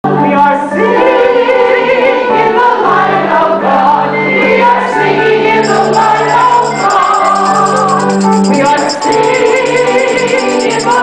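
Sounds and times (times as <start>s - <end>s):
congregation singing a hymn: 0.1s - 6.9s.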